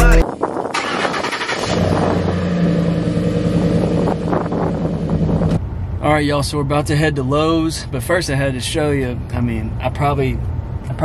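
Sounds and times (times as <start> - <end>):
truck engine starting: 0.0 - 5.6.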